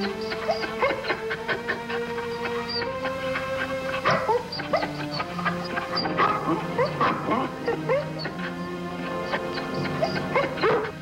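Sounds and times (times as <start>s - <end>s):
dogs yipping and whining: 0.0s - 11.0s
music with long held notes: 0.0s - 11.0s.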